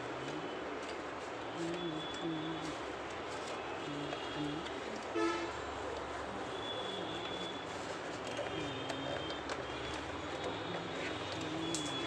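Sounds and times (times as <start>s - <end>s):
street noise: 0.0s - 12.0s
vehicle horn toot: 5.2s - 5.5s.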